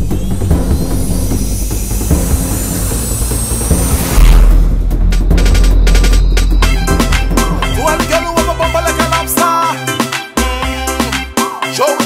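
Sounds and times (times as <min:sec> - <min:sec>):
low rumble: 0:00.0 - 0:07.8
rising whoosh: 0:00.0 - 0:07.8.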